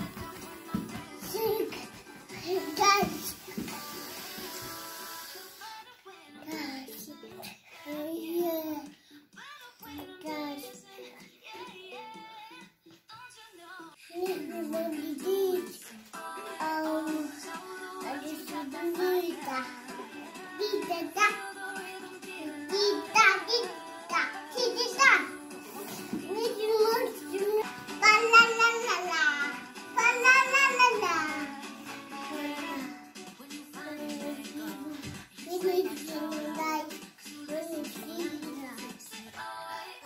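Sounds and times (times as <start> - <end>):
child singing: 0.0 - 40.0
music: 0.0 - 40.0.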